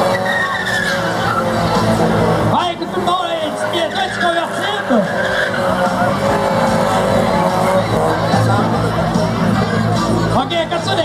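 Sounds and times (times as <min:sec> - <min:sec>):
car engine at high revs: 0:00.0 - 0:11.0
tyres spinning and squealing: 0:00.0 - 0:11.0.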